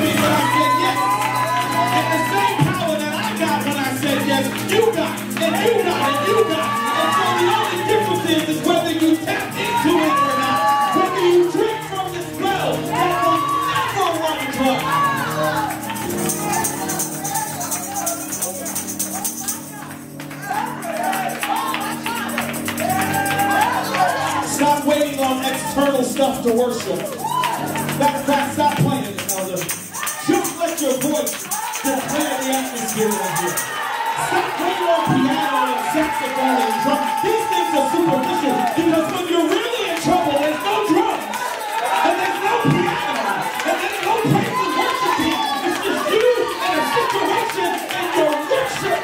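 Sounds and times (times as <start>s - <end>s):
congregation cheering and clapping: 0.0s - 49.0s
keyboard sustained chords: 0.0s - 49.0s
live worship band music: 0.0s - 49.0s.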